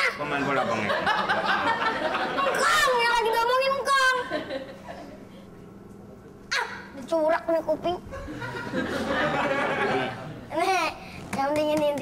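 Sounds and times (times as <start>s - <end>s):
boy yelping: 2.5s - 4.2s, 6.5s - 7.0s.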